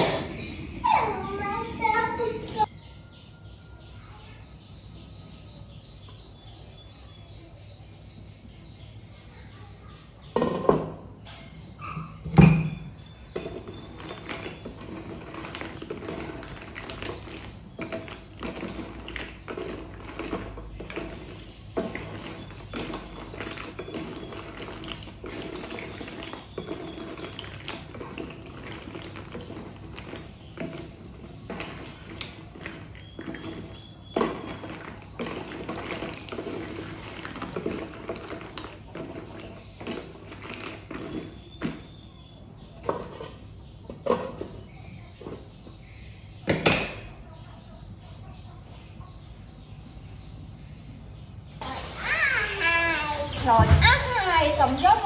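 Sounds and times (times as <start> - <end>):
bubbling water: 13.3 - 41.8
snail shells clacking in pot: 13.3 - 42.1.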